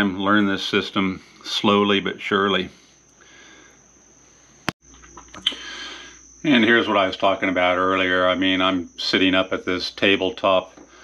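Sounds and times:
faint high whine: 0.0s - 11.0s
sharp click: 5.2s - 5.6s.

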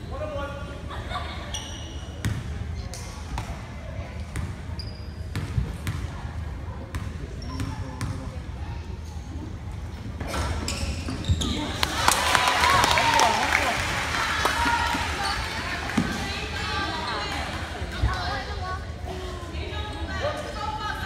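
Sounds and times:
voices in echoing gym: 0.0s - 21.0s.

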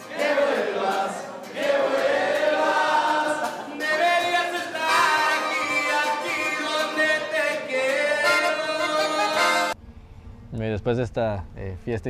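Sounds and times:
live band music: 0.0s - 9.8s
men singing together: 0.0s - 9.8s.

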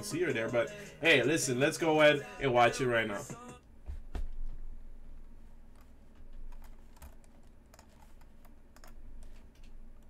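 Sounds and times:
computer keyboard clicks: 5.8s - 10.0s.

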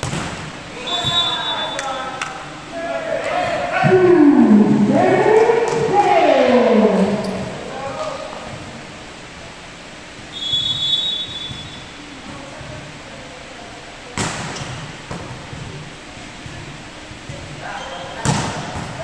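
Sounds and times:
volleyball struck hard: 0.0s - 0.5s
players' voices: 0.6s - 10.2s
referee whistle blast: 0.8s - 2.0s, 10.3s - 11.9s.

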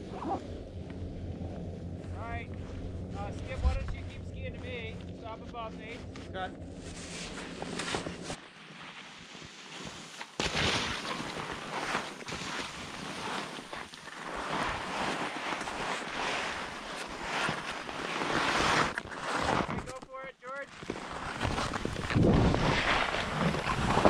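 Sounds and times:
wind rushing over microphone: 0.0s - 5.2s, 21.7s - 24.0s.

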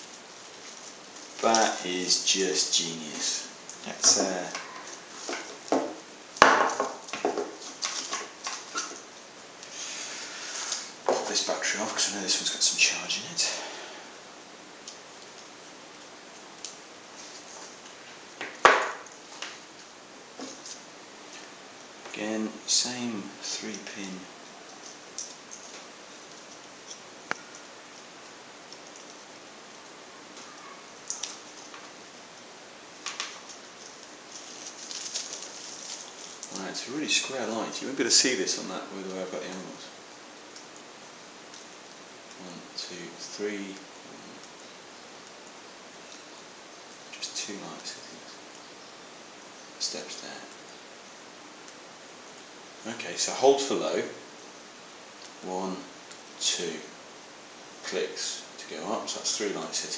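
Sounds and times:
soft rubbing and rustling: 0.0s - 3.3s, 17.0s - 18.3s, 33.2s - 37.7s
rustling and knocking: 5.2s - 9.0s, 18.4s - 19.6s.

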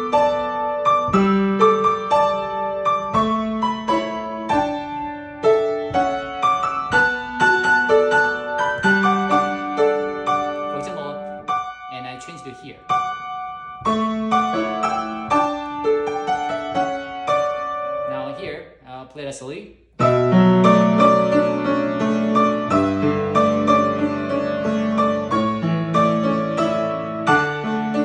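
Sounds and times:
grand piano playing: 0.0s - 18.6s, 20.0s - 28.0s.

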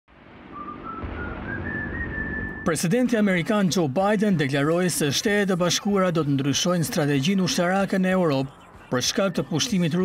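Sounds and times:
low rumble: 0.1s - 2.7s.

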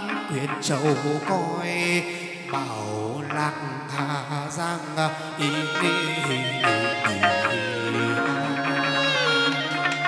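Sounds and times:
instrumental accompaniment: 0.0s - 10.0s
person singing long wavering note: 0.0s - 10.0s.

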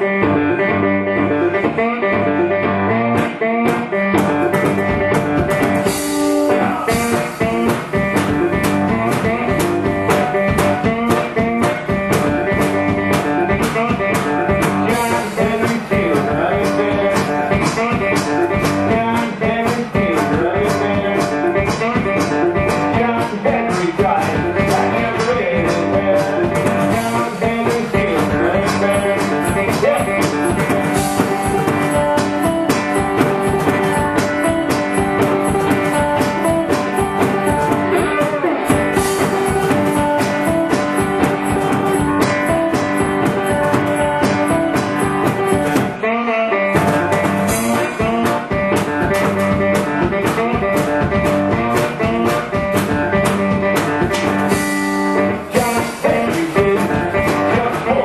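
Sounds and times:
guitar riff: 0.0s - 58.0s
drum kit and cymbals: 3.2s - 46.1s, 46.7s - 58.0s.

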